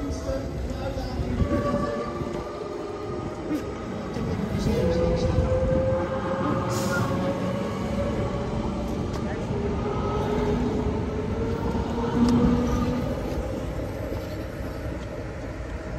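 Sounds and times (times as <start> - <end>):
wheels rumbling on rail: 0.0 - 15.9.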